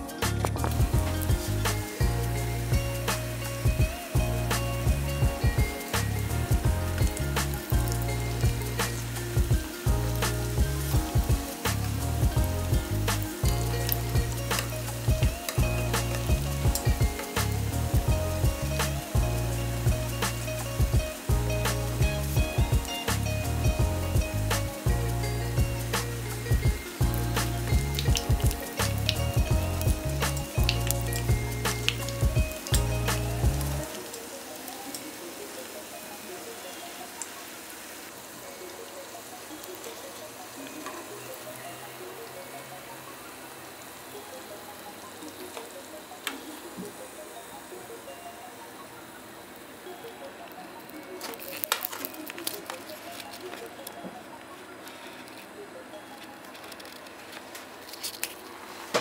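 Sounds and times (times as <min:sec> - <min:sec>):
background music with steady beat: 0:00.0 - 0:59.0
dough frying in hot oil: 0:00.0 - 0:59.0.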